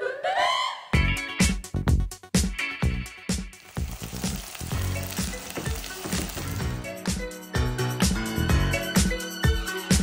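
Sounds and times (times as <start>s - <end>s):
background music with a beat: 1.0s - 10.0s
oil sizzling in a pot: 3.3s - 6.8s.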